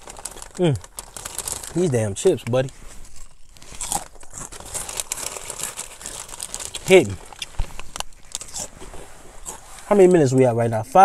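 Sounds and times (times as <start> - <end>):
chewing crunchy chips: 0.0 - 8.8, 9.4 - 9.9
man's voice: 9.9 - 11.0.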